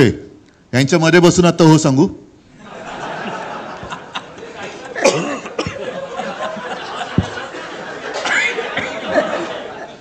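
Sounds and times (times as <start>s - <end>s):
men laughing and chuckling: 2.6s - 10.0s.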